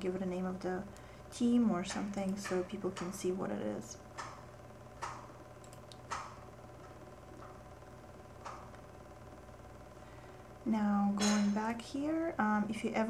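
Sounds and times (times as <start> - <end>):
faint electrical hum: 0.0 - 13.0
computer mouse clicks: 5.0 - 7.6.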